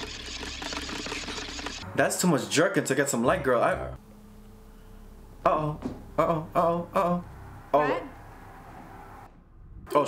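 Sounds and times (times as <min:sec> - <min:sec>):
hand-crank flashlight gear whir: 0:00.0 - 0:01.8.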